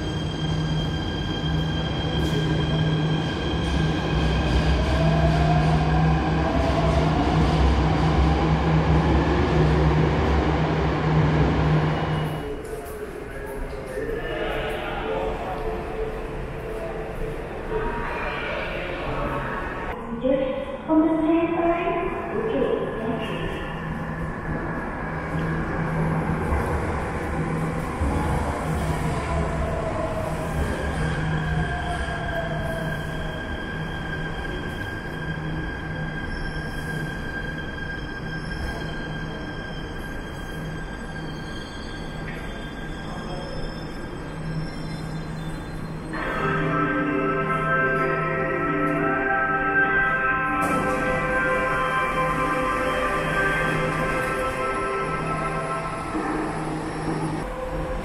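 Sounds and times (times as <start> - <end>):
train low rumble: 0.0 - 58.0.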